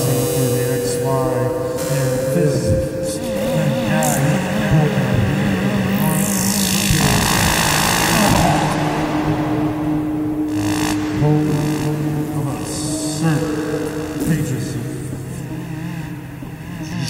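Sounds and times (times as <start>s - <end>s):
falling hiss sweep: 0.0s - 4.4s
dense band of noise: 0.0s - 17.0s
higher synth drone: 0.0s - 17.0s
low wavering synth drones: 0.0s - 17.0s.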